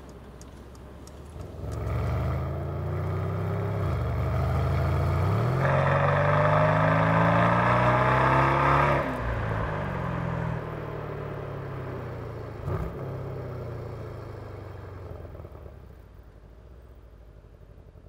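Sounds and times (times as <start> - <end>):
car engine revving hard: 1.6 - 9.2.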